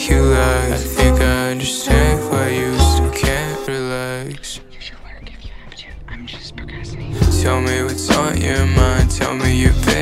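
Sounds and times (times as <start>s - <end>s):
soft whispered vocal: 3.4s - 8.8s
low bass: 6.0s - 10.0s.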